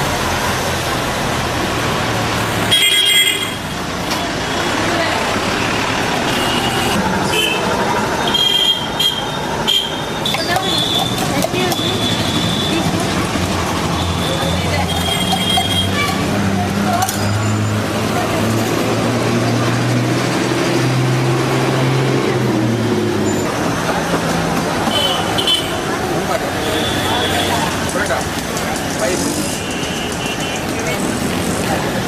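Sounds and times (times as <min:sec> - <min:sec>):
motor traffic: 0:00.0 - 0:32.0
voices: 0:03.8 - 0:32.0.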